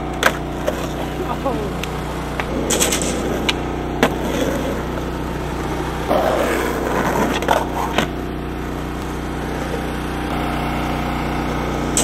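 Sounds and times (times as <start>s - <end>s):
skateboard clacks: 0.0s - 8.3s
skateboard scraping on concrete: 0.0s - 12.0s
skateboard wheels rolling: 0.0s - 12.0s.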